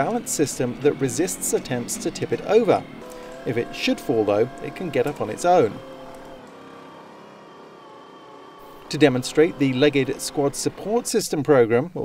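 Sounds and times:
gasoline engine droning and whining: 0.0s - 12.0s.

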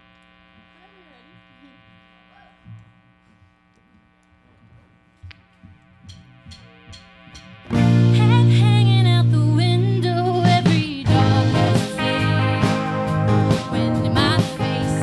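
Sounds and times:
amplifier electric hum: 0.0s - 15.0s
rock band playing: 6.4s - 9.3s, 10.3s - 15.0s.

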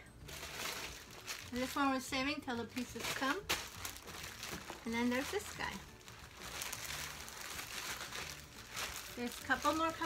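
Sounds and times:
plastic bag crinkling: 0.2s - 10.0s.

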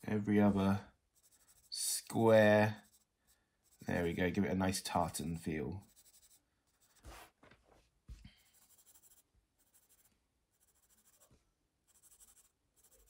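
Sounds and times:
pencil scratching on paper: 0.0s - 7.4s, 8.4s - 13.0s.

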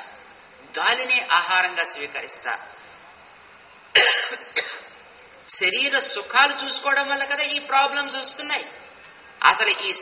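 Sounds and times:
man coughing: 4.0s - 5.0s.

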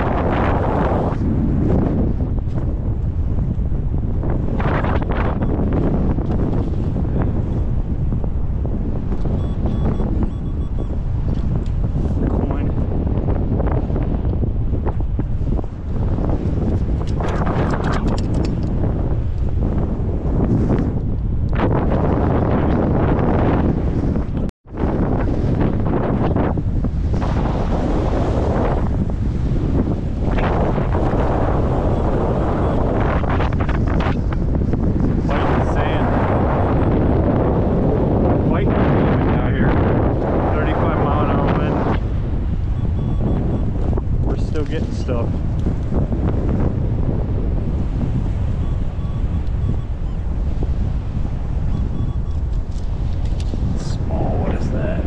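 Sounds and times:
strong wind buffeting microphone: 0.0s - 55.0s.

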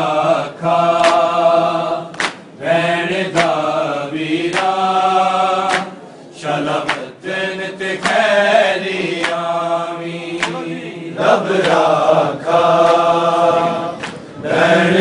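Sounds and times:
men chanting in unison: 0.0s - 15.0s
hands slapping chests: 1.0s - 1.3s, 2.1s - 2.5s, 3.3s - 3.6s, 4.5s - 4.8s, 5.6s - 6.0s, 6.8s - 7.1s, 8.0s - 8.3s, 9.0s - 9.4s, 10.4s - 10.7s, 11.6s - 11.9s, 14.0s - 14.3s.

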